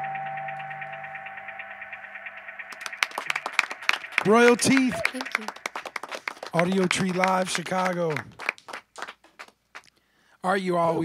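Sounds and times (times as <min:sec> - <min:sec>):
fluttering electric guitar: 0:00.0 - 0:07.4
people clapping: 0:02.8 - 0:10.0.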